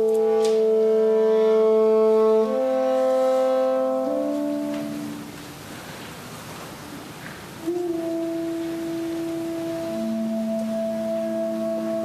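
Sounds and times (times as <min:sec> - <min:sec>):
held instrument note: 0:00.0 - 0:05.3
lower held instrument note: 0:00.0 - 0:05.3, 0:07.6 - 0:12.0.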